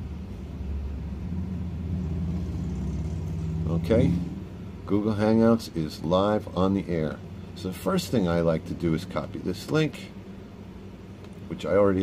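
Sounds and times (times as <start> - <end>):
low rumbling hum: 0.0 - 12.0.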